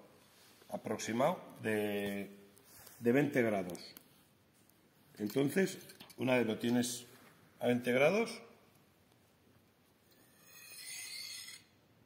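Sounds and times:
knife scraping on honing steel: 10.1 - 11.8.

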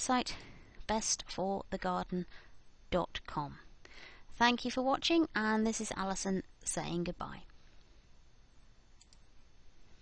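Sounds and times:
faint room hiss: 0.0 - 10.0
small click: 9.0 - 9.2.

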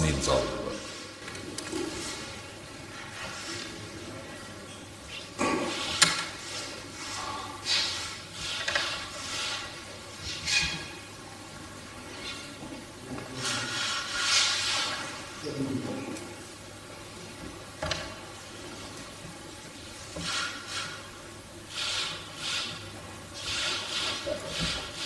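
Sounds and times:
room noise hiss: 0.0 - 25.0.

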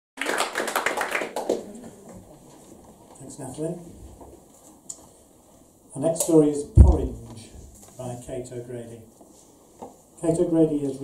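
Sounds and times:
audience applauding: 0.2 - 2.0.

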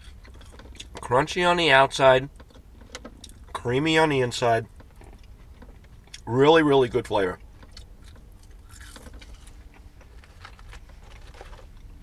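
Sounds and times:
low steady rumble: 0.0 - 12.0
chewing crisp fries: 7.4 - 12.0.

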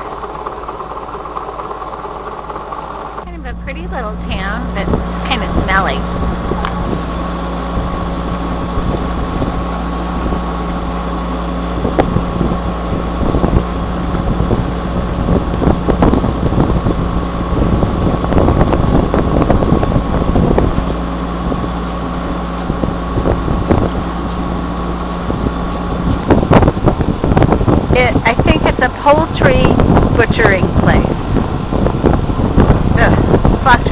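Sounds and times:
boat engine humming: 0.0 - 33.9
wind buffeting microphone: 0.0 - 33.9.

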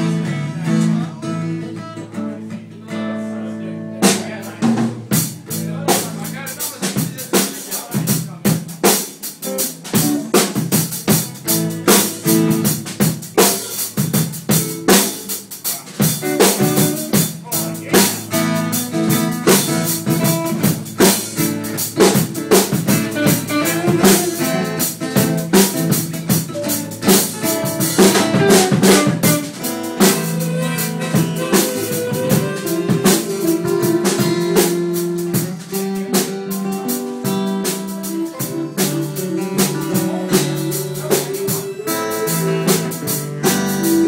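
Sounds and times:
blues band playing: 0.0 - 44.0
drum beat: 4.0 - 44.0
lap steel guitar: 16.2 - 44.0.

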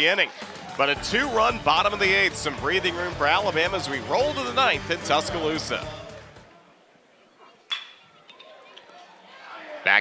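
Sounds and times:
faint crowd ambience: 0.0 - 10.0.

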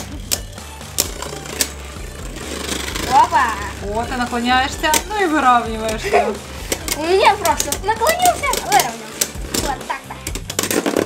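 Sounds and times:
quiet music: 0.0 - 11.0
spinning tops clacking: 0.0 - 11.0
spinning tops whirring: 0.0 - 11.0.

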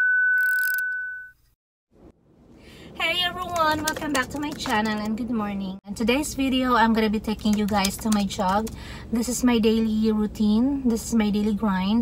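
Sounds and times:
high-pitched test-tone beep: 0.0 - 1.4.

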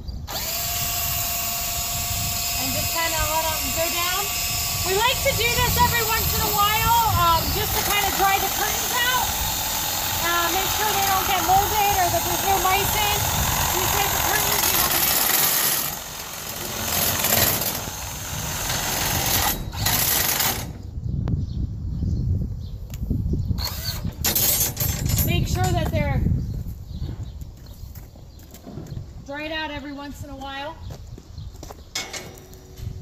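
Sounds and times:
drill turning winch shaft: 0.3 - 20.8, 23.6 - 25.8.

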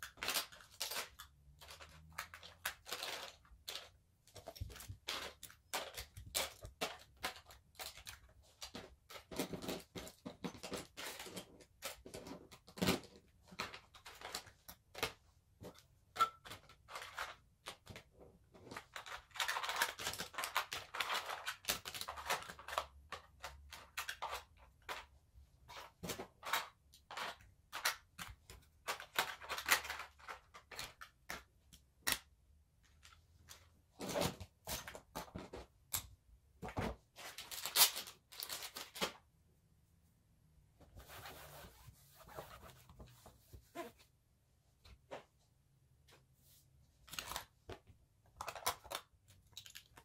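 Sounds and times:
plastic makeup items clattering: 0.0 - 36.0, 47.1 - 50.0
rustling handling noises: 40.7 - 50.0.

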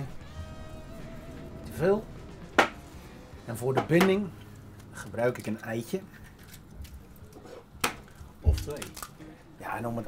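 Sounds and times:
egg shell cracking: 6.2 - 9.2.

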